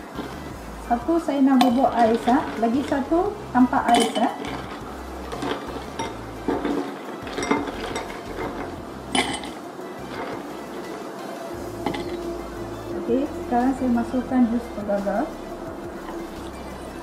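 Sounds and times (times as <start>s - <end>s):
background music: 0.0s - 17.0s
ice cubes clinking in glass: 3.8s - 10.4s.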